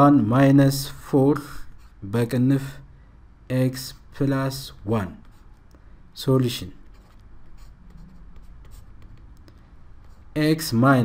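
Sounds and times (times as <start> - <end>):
low steady hum: 0.0 - 11.0
stylus scratching on tablet: 1.6 - 2.0, 4.6 - 5.8, 6.4 - 10.8.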